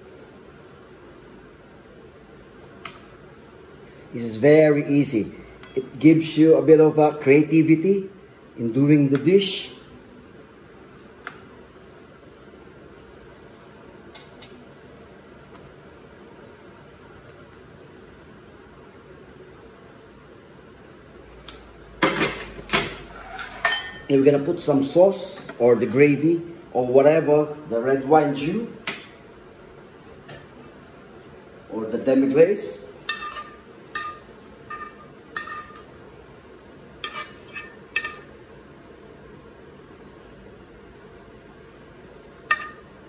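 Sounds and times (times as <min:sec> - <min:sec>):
tongs knocking against a plate: 0:33.0 - 0:35.9, 0:42.4 - 0:42.9
metal spoon clinking on frying pan: 0:42.5 - 0:42.9.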